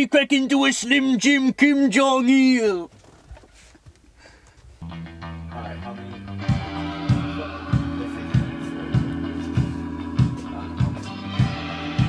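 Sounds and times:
bass guitar: 4.8 - 12.0
electric guitar: 4.8 - 12.0
drums playing steady beat: 6.5 - 12.0.

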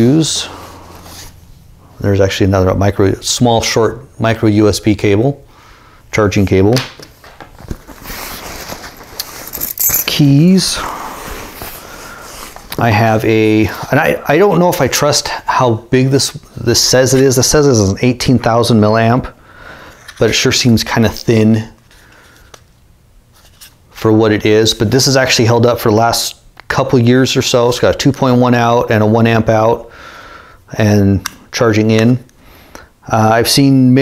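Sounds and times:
rummaging in fabric backpack: 7.6 - 12.8
keys jingling: 8.9 - 10.5.

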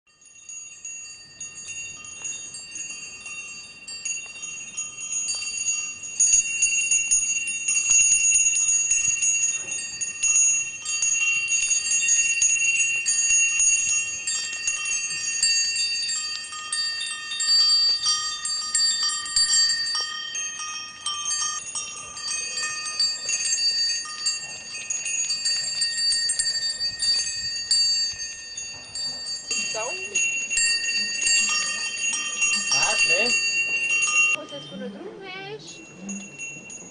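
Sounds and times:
goat bells jingling: 0.1 - 36.9
goats trotting on gravel: 1.5 - 34.4.

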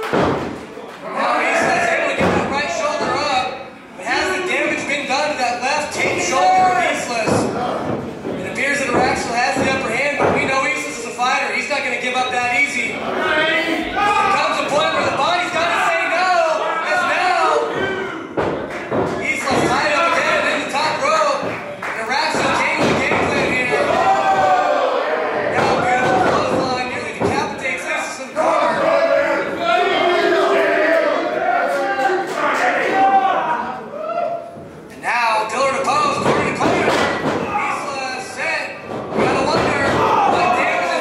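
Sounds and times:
thuds in wrestling ring: 0.0 - 0.6, 6.0 - 10.7
voices: 0.0 - 34.2, 35.0 - 41.0.

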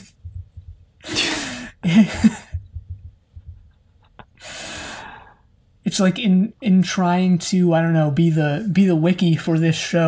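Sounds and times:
faint low thumps: 0.0 - 1.0, 2.2 - 3.9
person breathing out heavily: 1.0 - 1.8, 4.4 - 5.5
person laughing: 1.8 - 4.4.

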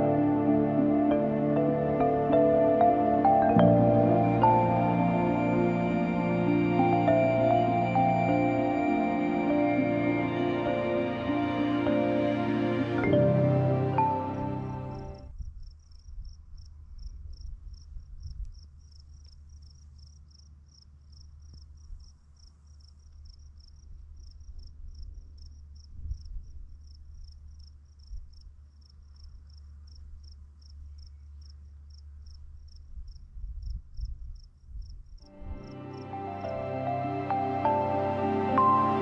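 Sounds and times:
cricket chirping: 14.9 - 36.5
wind rumbling on microphone: 15.2 - 18.8, 32.4 - 35.7.

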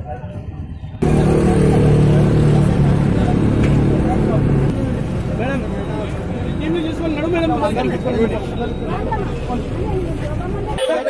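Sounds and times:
bus engine humming: 1.0 - 11.0
people talking: 1.0 - 11.0.

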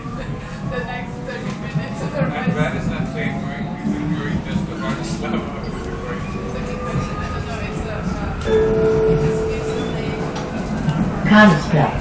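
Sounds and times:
train wheels rumbling on rail: 0.0 - 12.0
train electric whine: 1.6 - 11.8.

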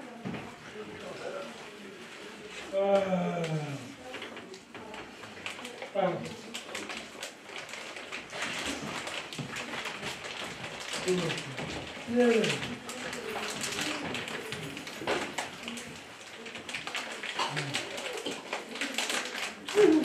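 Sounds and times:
rapid small clicks and crackles: 3.4 - 20.0.

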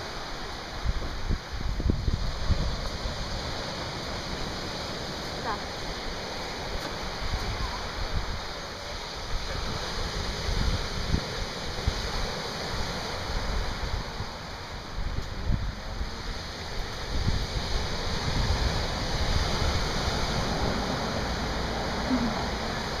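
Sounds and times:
ocean surf breaking on beach: 0.0 - 23.0
wind rumbling on microphone: 0.0 - 23.0.

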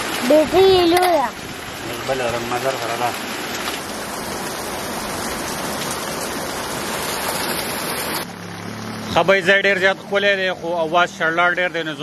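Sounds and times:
stream water rushing: 0.0 - 12.0.

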